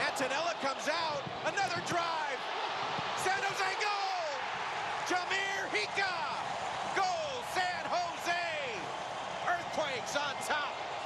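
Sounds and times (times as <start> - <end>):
stadium crowd noise: 0.0 - 11.0
commentator shouting excitedly: 3.2 - 8.8.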